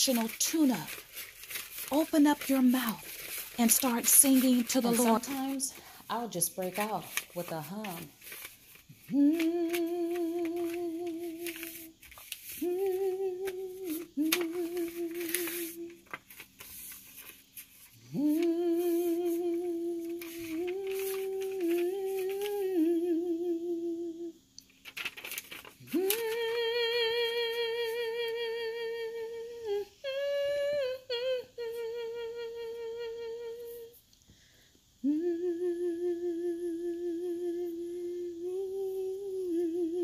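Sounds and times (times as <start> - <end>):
woman humming: 3.6 - 8.1, 9.0 - 11.9, 12.6 - 16.0, 18.1 - 24.4, 25.9 - 34.0, 35.0 - 40.0.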